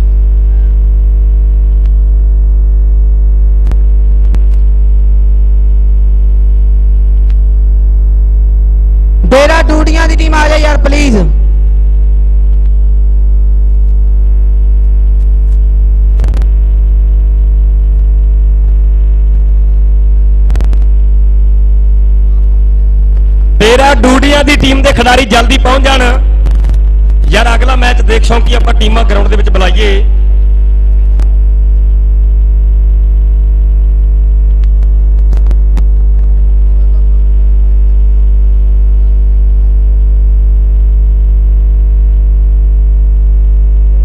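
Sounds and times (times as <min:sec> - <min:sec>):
electrical mains hum: 0:00.0 - 0:44.0
brief crackle: 0:03.6 - 0:04.8, 0:12.5 - 0:12.8, 0:13.6 - 0:14.2, 0:14.8 - 0:16.8, 0:17.7 - 0:19.8, 0:20.4 - 0:21.1, 0:26.4 - 0:27.3, 0:30.4 - 0:31.9, 0:34.4 - 0:37.0
sharp clicks: 0:20.4 - 0:20.9, 0:34.4 - 0:36.4.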